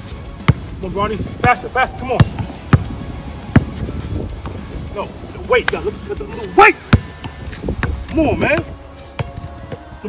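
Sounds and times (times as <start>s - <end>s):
basketball bouncing on asphalt: 0.3s - 0.8s, 1.4s - 1.6s, 2.2s - 4.7s, 6.8s - 9.9s.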